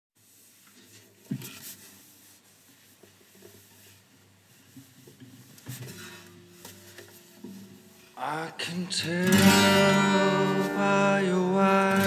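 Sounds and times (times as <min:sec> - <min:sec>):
soft rubbing handling noise: 0:00.2 - 0:08.3.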